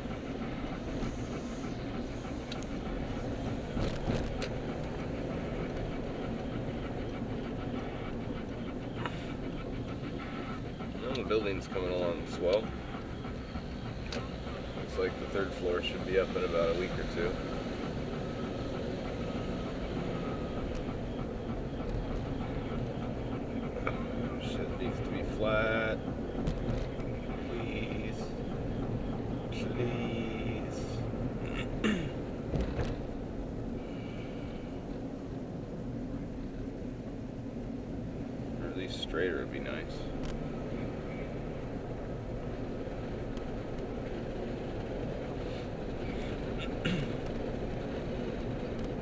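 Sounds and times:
car road and engine noise: 0.0 - 49.0.

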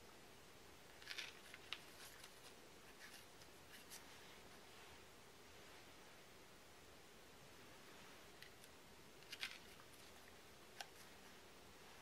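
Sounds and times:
small clicks and rustles: 0.9 - 4.2, 8.4 - 11.2.

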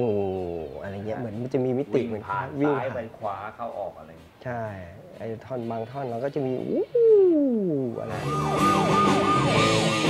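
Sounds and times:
electric guitar tremolo wail: 6.7 - 10.0.

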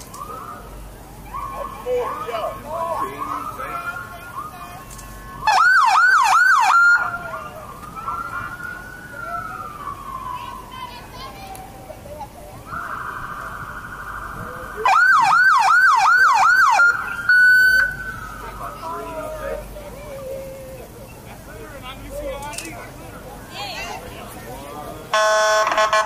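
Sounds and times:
police siren wail: 0.0 - 19.6, 25.1 - 26.0
police siren yelp: 0.0 - 19.6, 25.1 - 26.0
steady siren tone: 5.4 - 10.8, 12.7 - 18.7, 25.1 - 26.0.

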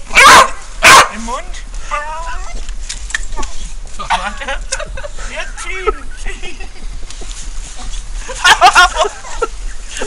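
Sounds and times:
dog barking: 0.1 - 1.2.

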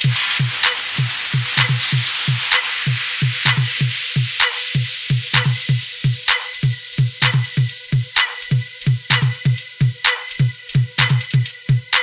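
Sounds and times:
hissing noise wash: 0.0 - 10.7
house music kick drum: 0.0 - 12.0.

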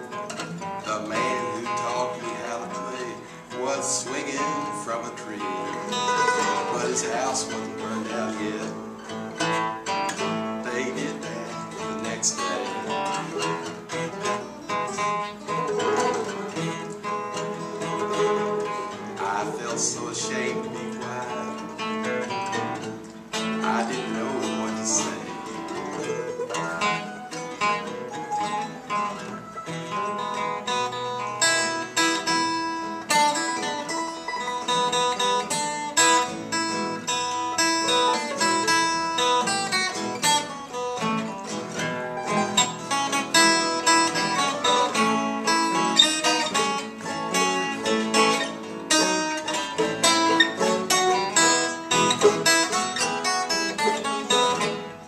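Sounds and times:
acoustic guitar plucking: 0.0 - 55.0.

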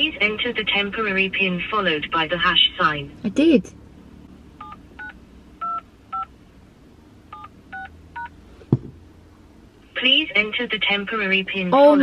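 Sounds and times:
low thump: 8.7 - 9.0.

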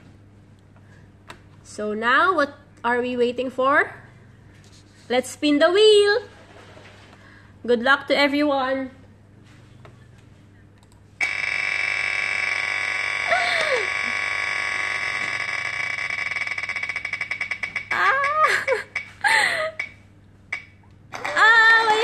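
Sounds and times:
spinning wheel ticking: 16.0 - 19.2
woman giving excited cries: 17.9 - 19.7.

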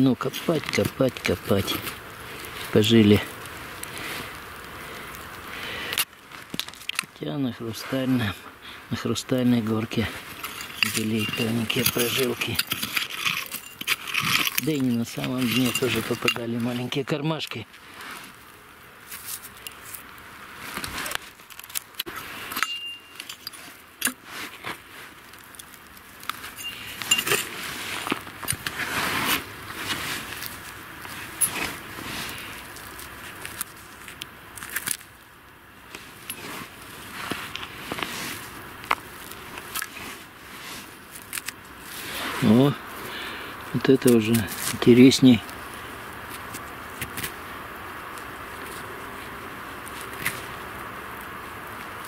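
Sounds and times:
hand cultivator scraping soil: 9.6 - 18.4, 20.6 - 35.0, 35.9 - 42.8.

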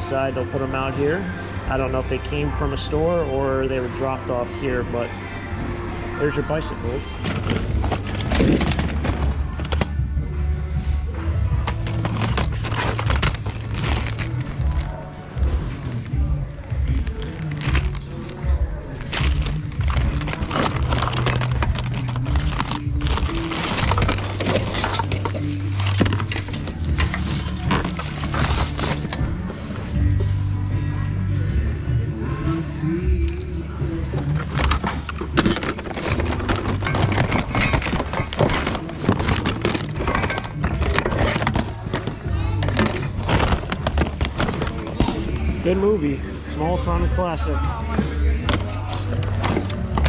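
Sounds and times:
background music with bass line: 0.0 - 50.0
plastic cases clattering in a bin: 6.6 - 10.0, 11.6 - 14.9, 19.0 - 29.2, 34.2 - 45.8.

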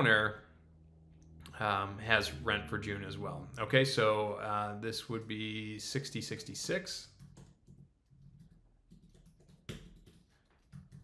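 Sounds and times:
keystrokes on a computer keyboard: 7.1 - 11.0.

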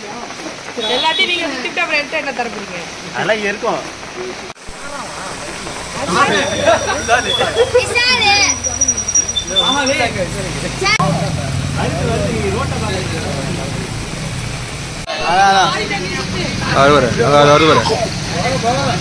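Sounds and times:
voices calling out: 0.3 - 19.0.

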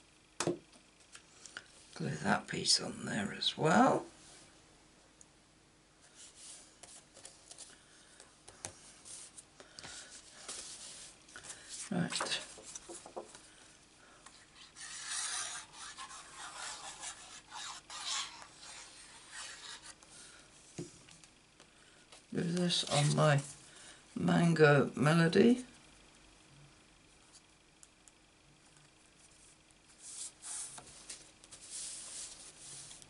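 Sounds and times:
card rubbing strokes: 14.3 - 20.4, 29.3 - 33.0
paper sliding and rustling: 29.9 - 33.0.

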